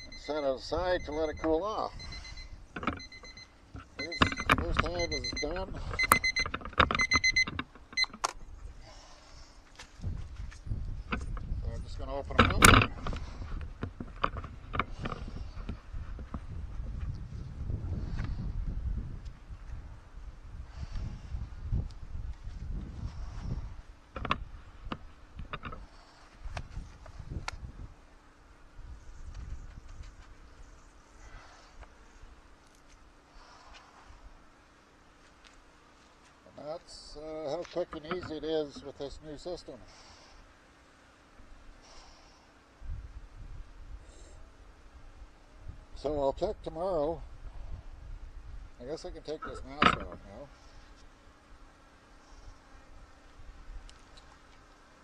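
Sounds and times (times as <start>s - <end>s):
kitchen timer beeping: 0.0s - 8.1s
clicks and knocks of equipment: 2.8s - 8.4s, 12.3s - 13.2s, 49.7s - 50.2s.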